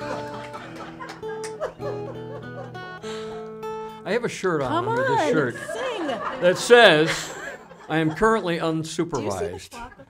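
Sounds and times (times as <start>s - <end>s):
acoustic guitar picking: 0.0s - 6.0s.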